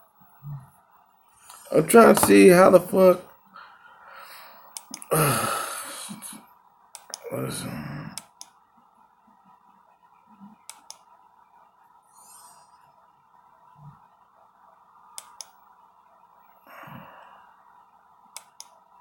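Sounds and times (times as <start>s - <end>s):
faint steady hum: 0.0s - 19.0s
computer mouse clicks: 4.7s - 5.1s, 6.9s - 7.2s, 8.1s - 8.6s, 10.6s - 11.1s, 15.2s - 15.6s, 18.3s - 18.8s
soft breath or rustle: 12.1s - 12.9s.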